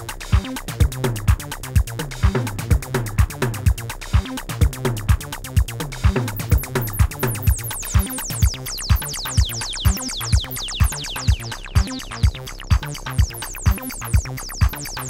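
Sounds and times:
electronic dance beat: 0.0 - 15.0.

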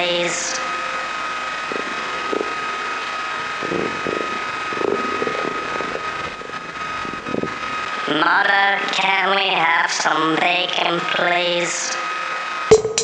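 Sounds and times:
rushing noise drone: 0.0 - 13.0.

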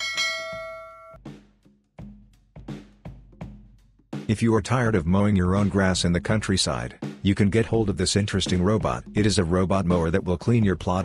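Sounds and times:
notification bell chime: 0.0 - 1.2.

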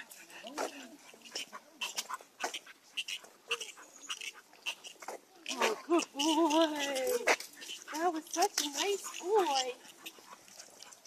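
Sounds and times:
dogs' paws scuffing on pavement: 0.0 - 11.0.

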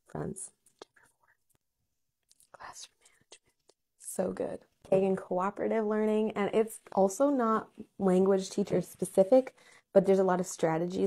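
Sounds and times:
woman whispering: 2.3 - 4.2.

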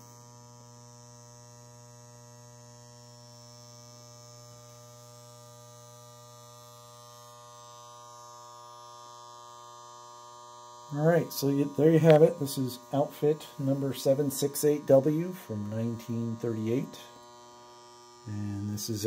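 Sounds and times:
toy train electrical hum: 0.0 - 19.0.

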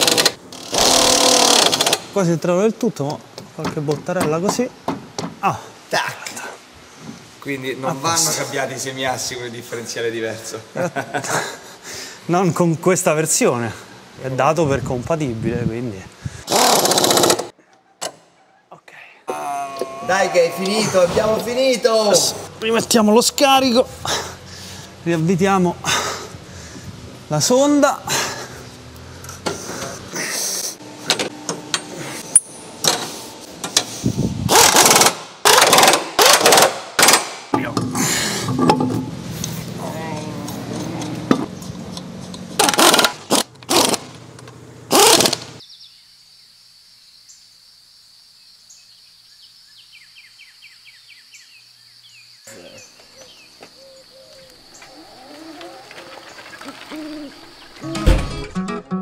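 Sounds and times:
pneumatic impact wrench rattling: 0.0 - 2.2, 16.5 - 17.5, 31.1 - 39.1, 42.6 - 44.2, 44.9 - 45.6.

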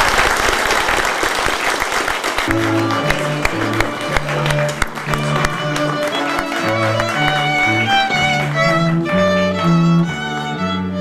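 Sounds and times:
people clapping: 0.0 - 11.0
bowed strings music: 2.4 - 11.0.

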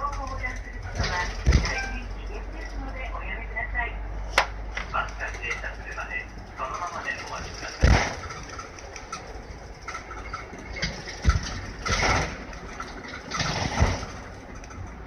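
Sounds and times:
bus diesel engine idling: 0.0 - 15.0
dull thumps: 0.9 - 2.0, 7.8 - 8.5.

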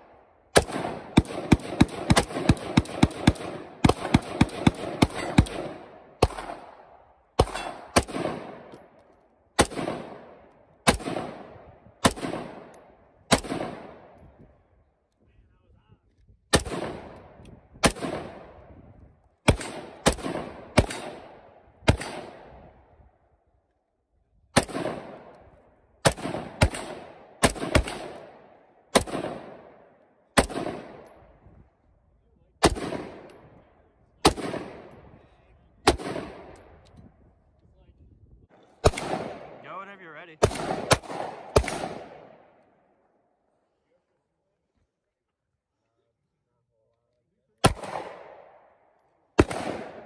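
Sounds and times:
rifle shots with echo: 0.0 - 14.6, 16.5 - 23.0, 24.5 - 31.5, 32.5 - 36.9, 38.5 - 43.3, 47.6 - 50.0.

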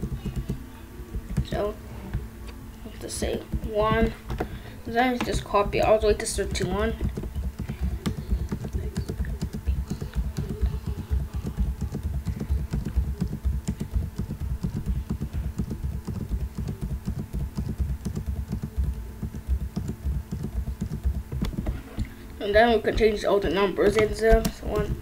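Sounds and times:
keyboard keys clicking rapidly: 0.0 - 1.8, 3.0 - 25.0.

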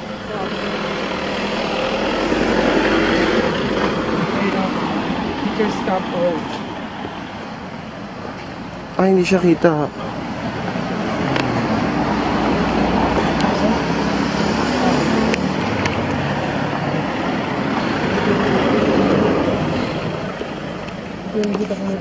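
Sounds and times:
car passing by: 0.0 - 22.0.

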